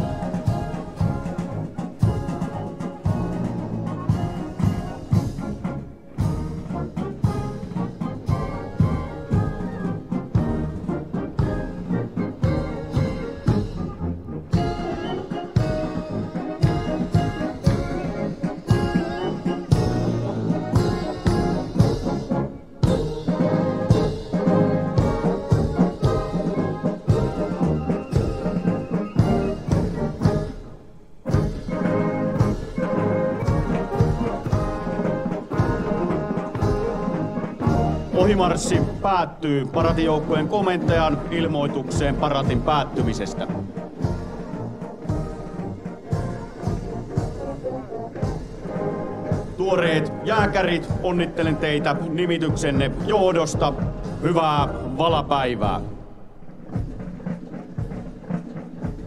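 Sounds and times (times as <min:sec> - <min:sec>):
military brass band playing a march: 0:00.0 - 0:59.0.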